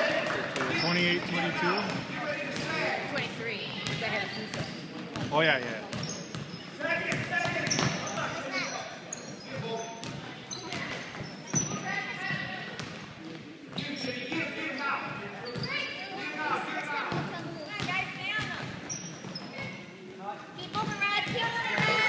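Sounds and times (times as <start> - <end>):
basketball bouncing on court: 3.6 - 8.2, 9.5 - 13.1, 17.1 - 19.8, 20.6 - 22.0.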